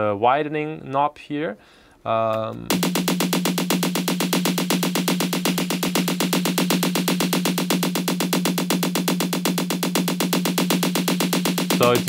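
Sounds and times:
low synth note: 0:02.7 - 0:12.0
synth repeated notes: 0:02.7 - 0:12.0.

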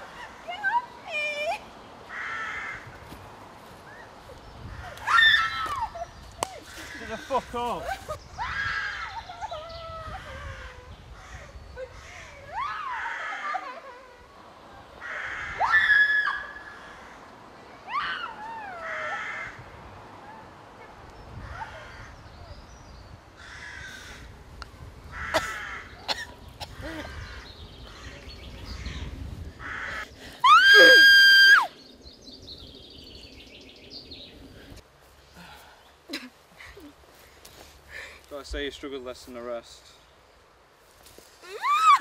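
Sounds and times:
woman screaming and crying out: 0:30.4 - 0:31.7, 0:41.4 - 0:42.0.

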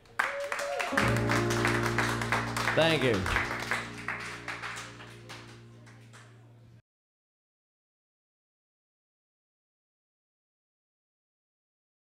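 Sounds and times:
applause: 0:00.0 - 0:06.4.

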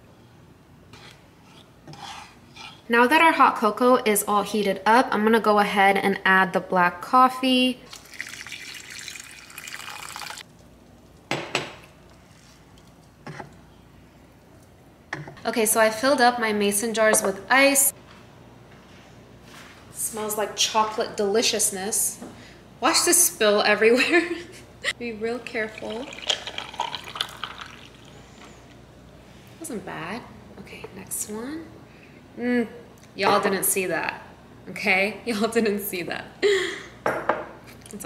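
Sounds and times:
coffee pouring into a saucepan: 0:07.9 - 0:10.4, 0:25.6 - 0:28.2.

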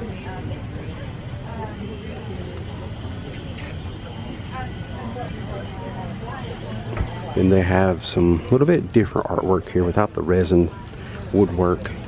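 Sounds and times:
distant people talking: 0:00.0 - 0:12.0.

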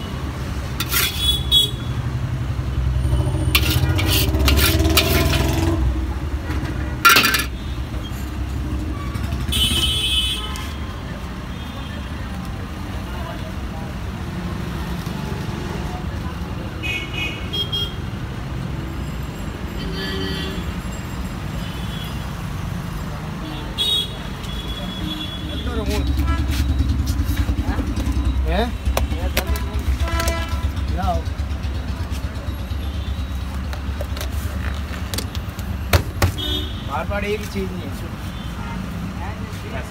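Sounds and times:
low rumble of traffic: 0:00.0 - 0:39.9
car horn toots: 0:29.4 - 0:30.8, 0:36.3 - 0:36.9.

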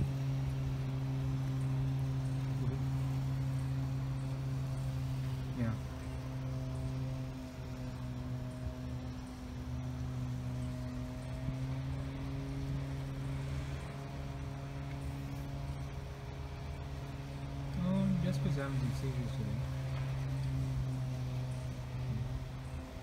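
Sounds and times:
machine hum: 0:00.0 - 0:23.0.

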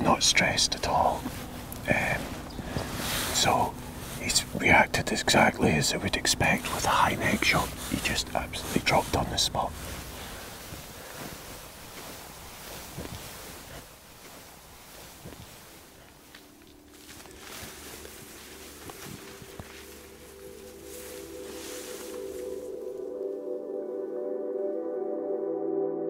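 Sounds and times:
rustling in long grass: 0:00.0 - 0:24.1
quiet ambient music: 0:00.0 - 0:26.0.

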